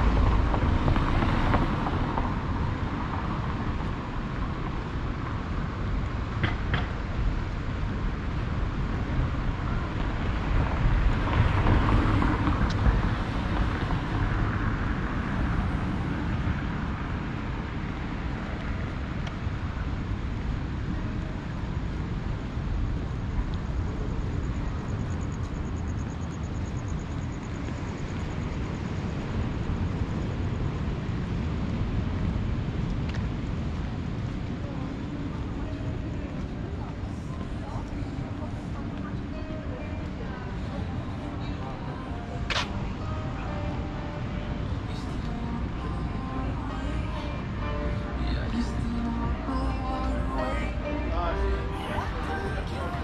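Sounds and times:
outdoor promenade ambience: 0.0s - 53.0s
wind noise on microphone: 0.0s - 53.0s.

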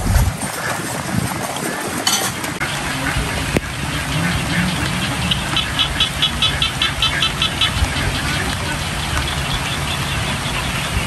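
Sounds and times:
steady rain: 0.0s - 11.0s.

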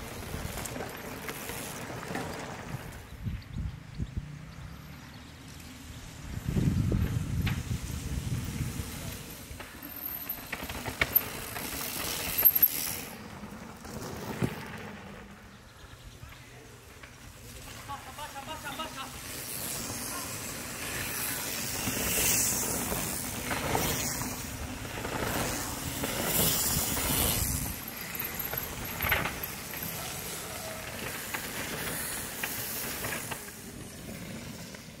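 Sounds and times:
bike tyres crunching over gravel: 0.0s - 3.1s, 5.7s - 35.0s.

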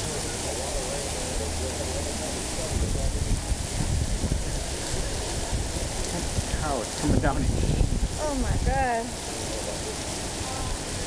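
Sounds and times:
heavy rain pouring: 0.0s - 11.0s
wind buffeting microphone: 2.6s - 9.1s.

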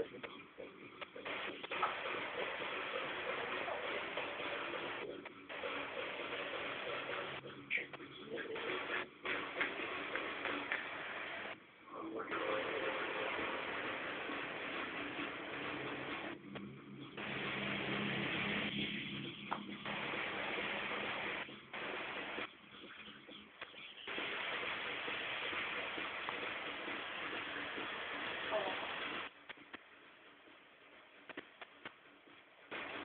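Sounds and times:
spray-paint can hissing: 23.6s - 29.3s.

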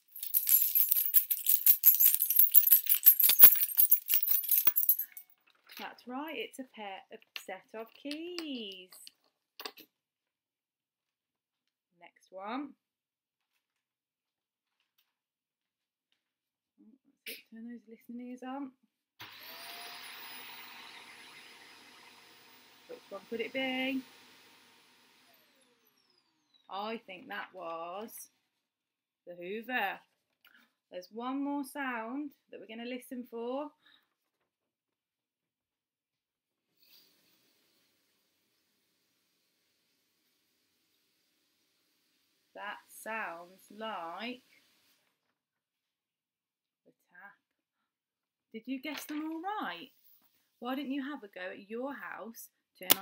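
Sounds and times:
metal keys jangling: 0.0s - 5.3s
vacuum cleaner motor winding down: 19.2s - 26.6s.

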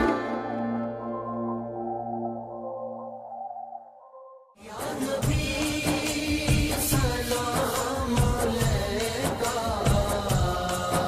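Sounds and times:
sustained held chord: 0.0s - 3.8s.

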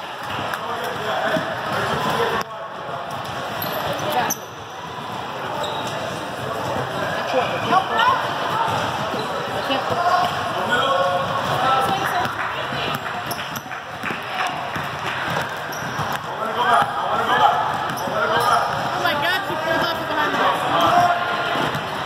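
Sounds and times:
chatter and calls of people: 0.0s - 22.0s
ball bouncing on court floor: 11.2s - 20.1s.

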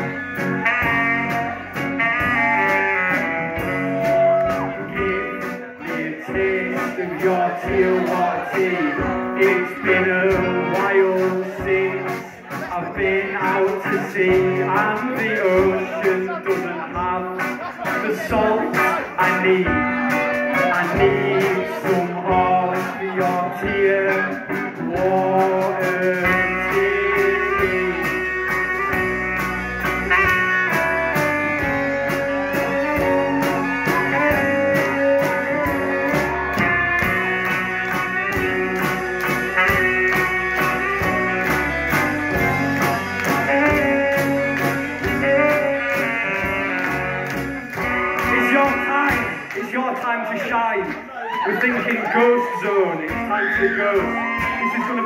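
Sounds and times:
saxophone melody: 0.0s - 12.5s, 17.3s - 22.5s, 23.6s - 49.6s
electric guitars: 0.0s - 49.7s
heavy bass: 0.0s - 51.6s
drums: 0.0s - 55.0s.

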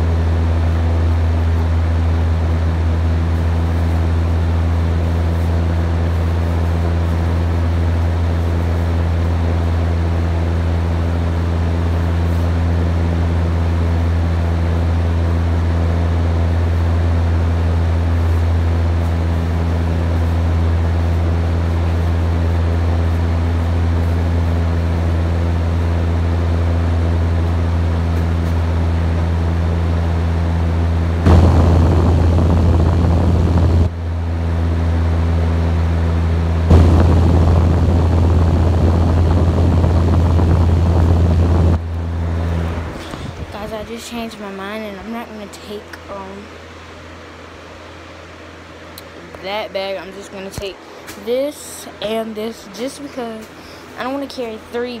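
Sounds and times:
steady low hum: 0.0s - 55.0s
loud rough noise: 28.8s - 43.7s.

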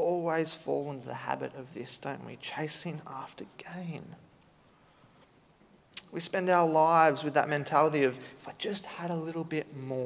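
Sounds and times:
man speaking: 0.0s - 4.3s, 6.0s - 10.0s.

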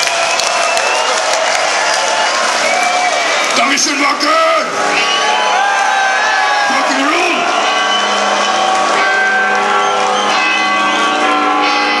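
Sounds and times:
crowd cries: 0.0s - 12.0s.

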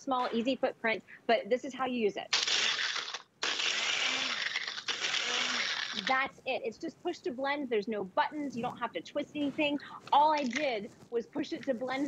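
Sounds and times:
blender crushing ice: 2.3s - 6.3s.

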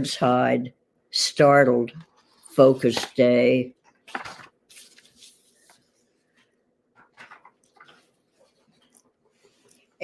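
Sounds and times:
paper rustling: 2.2s - 9.9s.

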